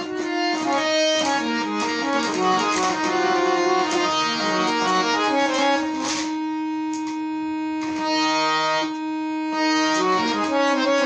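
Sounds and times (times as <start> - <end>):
harmonium drone note: 0.0 - 11.0.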